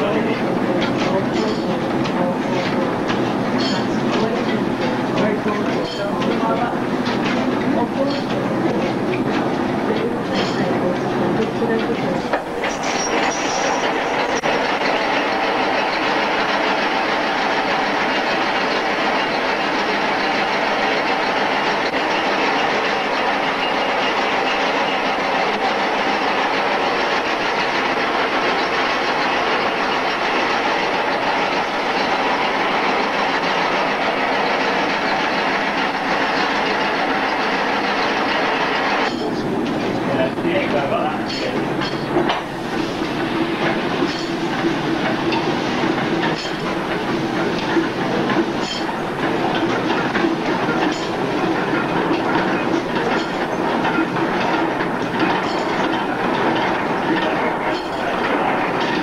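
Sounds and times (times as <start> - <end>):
line shafting and belts clattering: 0.0 - 59.0.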